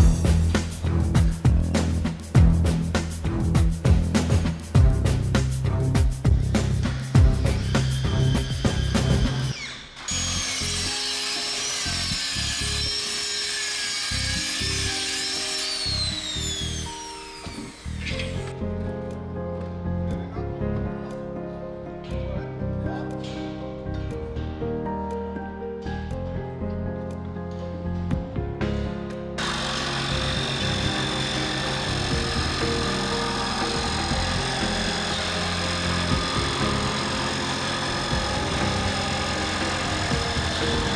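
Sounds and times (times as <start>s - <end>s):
background music with beat: 0.0s - 9.5s, 28.0s - 29.3s
circular saw cutting: 6.9s - 18.5s, 29.4s - 40.9s.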